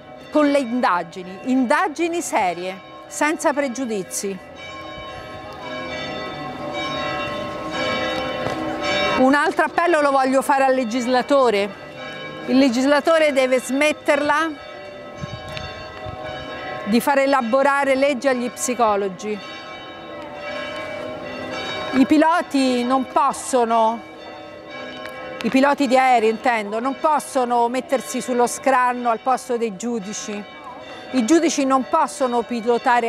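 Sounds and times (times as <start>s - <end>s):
bells ringing: 0.0s - 33.0s.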